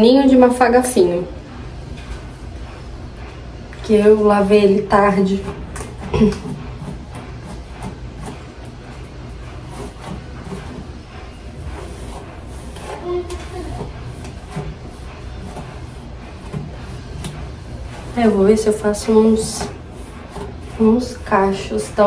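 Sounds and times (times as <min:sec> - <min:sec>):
steady low hum: 0:00.0 - 0:22.0
hairbrush scratching through hair: 0:04.4 - 0:22.0.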